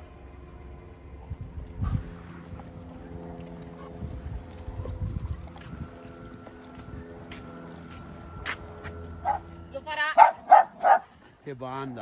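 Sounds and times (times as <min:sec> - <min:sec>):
faint mechanical hum: 0:00.0 - 0:11.4
wind on microphone: 0:01.2 - 0:07.4.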